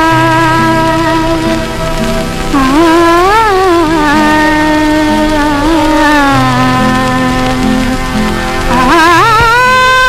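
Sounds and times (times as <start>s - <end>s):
low steady accompaniment: 0.0s - 10.0s.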